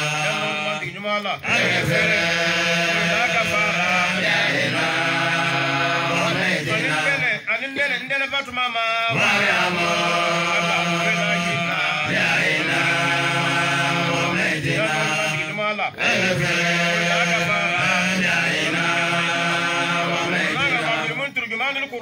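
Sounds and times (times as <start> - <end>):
men chanting into microphones: 0.0 - 21.9.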